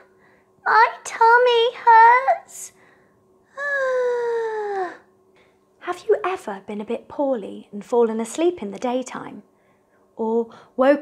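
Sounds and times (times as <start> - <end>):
woman moaning in puppet voice: 3.6 - 5.0.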